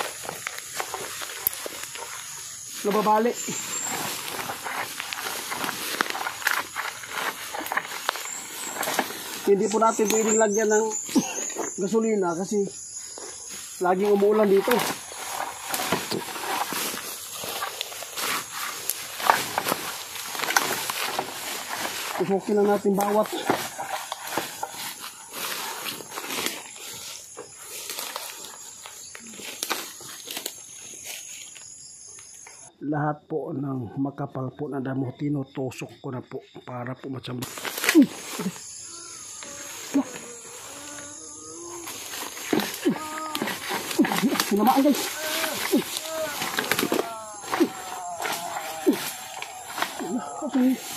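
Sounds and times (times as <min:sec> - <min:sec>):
rustling leaves and grass: 0:00.0 - 0:32.7, 0:37.3 - 0:50.9
insects buzzing: 0:00.0 - 0:50.9.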